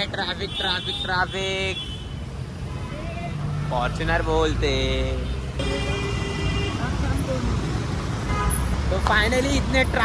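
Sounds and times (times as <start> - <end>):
traffic engines rumbling: 0.0 - 10.0.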